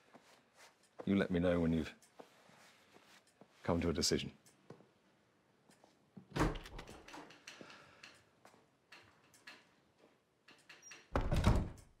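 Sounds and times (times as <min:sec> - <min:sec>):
wooden door shutting: 0:06.3 - 0:07.0, 0:11.0 - 0:11.8.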